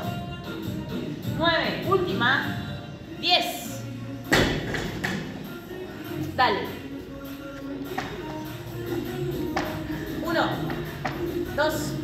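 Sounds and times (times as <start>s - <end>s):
background music with singing: 0.0s - 12.0s.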